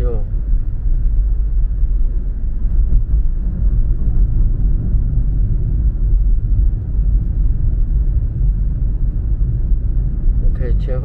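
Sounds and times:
car road rumble from inside: 0.0s - 11.0s.

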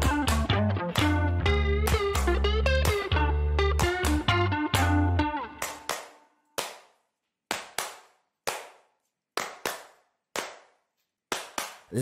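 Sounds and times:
handclaps with room echo: 0.0s - 12.0s.

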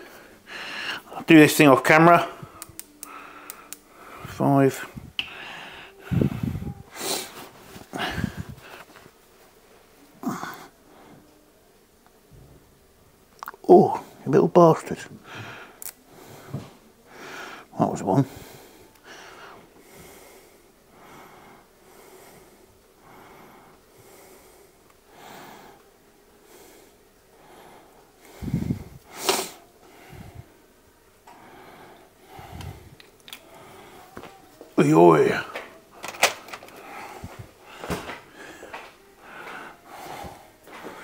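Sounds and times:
person breathing noisily: 0.0s - 1.2s, 2.2s - 9.0s, 15.2s - 34.4s, 35.8s - 41.0s.

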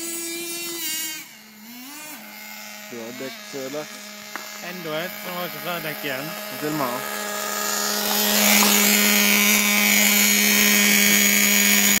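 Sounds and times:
model engine idling buzz: 0.0s - 12.0s.

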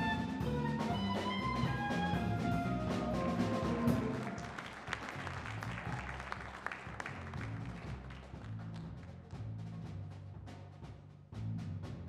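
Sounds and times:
drum kit and cymbals: 0.0s - 12.0s
upright bass line: 0.0s - 12.0s.

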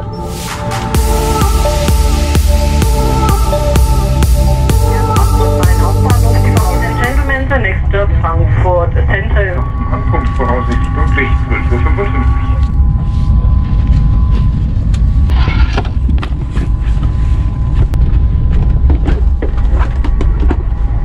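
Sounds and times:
high whine: 0.0s - 21.0s
train rumbling: 0.0s - 21.0s
voices: 4.8s - 12.7s.

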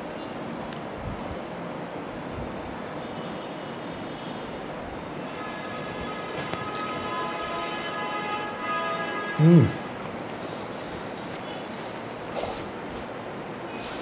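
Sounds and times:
steady background hiss: 0.0s - 14.0s.

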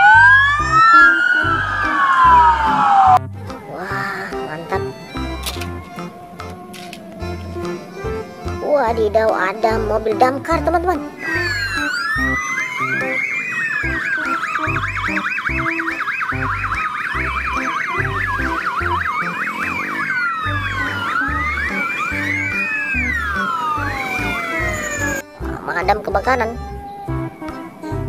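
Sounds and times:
background music beat: 0.0s - 28.0s
fire engine sirens wailing: 0.0s - 28.0s.

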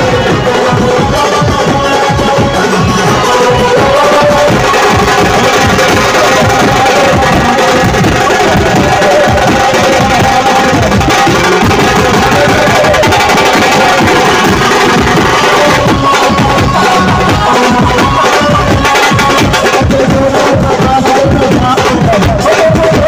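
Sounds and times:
marching drums beaten fast: 0.0s - 23.0s.

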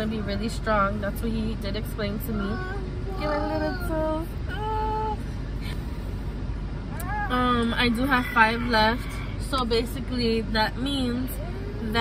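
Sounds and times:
low rumble inside car: 0.0s - 12.0s.

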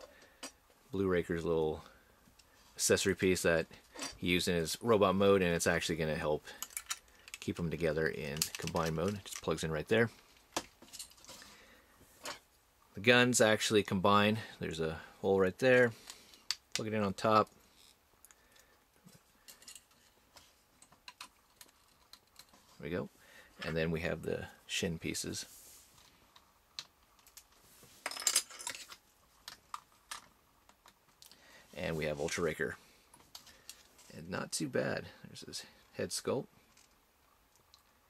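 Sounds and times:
plastic toy parts clicking: 8.4s - 9.4s
soft rustle: 17.6s - 30.1s, 31.0s - 34.4s.

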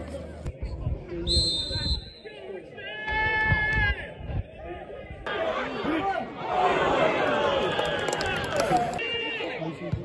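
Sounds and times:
referee's whistle blast: 1.3s - 2.3s.

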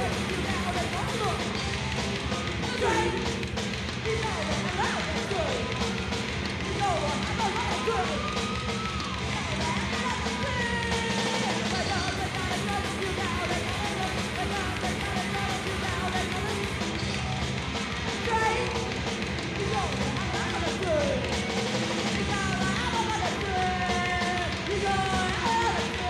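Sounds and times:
punk rock band playing: 0.0s - 26.0s.

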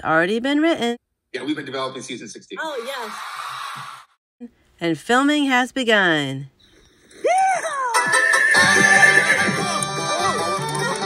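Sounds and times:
horse whinnying: 7.1s - 9.8s.

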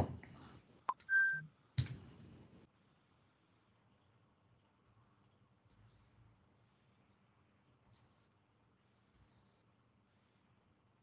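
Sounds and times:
electronic beep: 0.9s - 1.5s.

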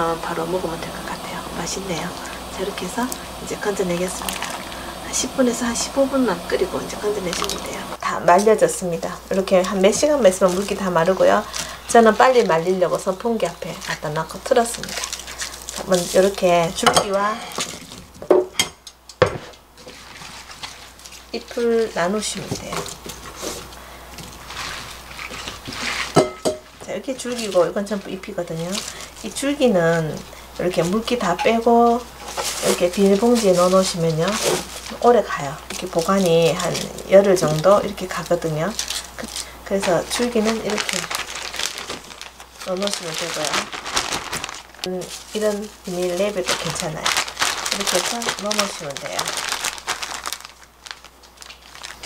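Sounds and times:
plastic bag crinkling: 0.0s - 18.3s, 19.8s - 52.0s
onion stalks rustling on board: 0.2s - 18.3s, 19.2s - 52.0s.

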